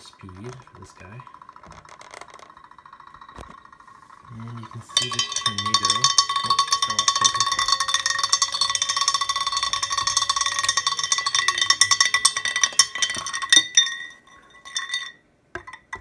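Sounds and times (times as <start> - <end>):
glass ringing: 0.0 - 16.0
stir bar rattling in glass beaker: 0.0 - 16.0.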